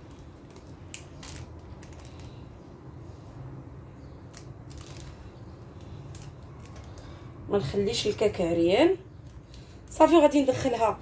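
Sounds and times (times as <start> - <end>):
almond flakes crunching: 4.2 - 7.2.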